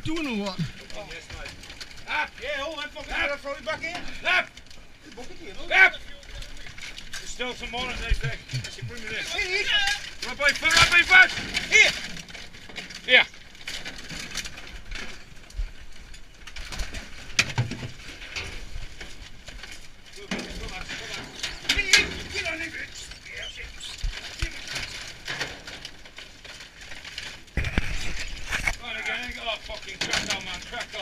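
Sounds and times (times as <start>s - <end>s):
rubbish rattling in a metal skip: 0.0s - 31.0s.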